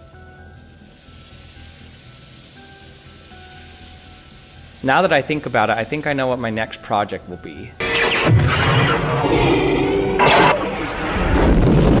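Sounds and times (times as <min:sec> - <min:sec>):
noisy laser blast: 0:07.8 - 0:12.0
deep explosion rumble: 0:08.1 - 0:12.0.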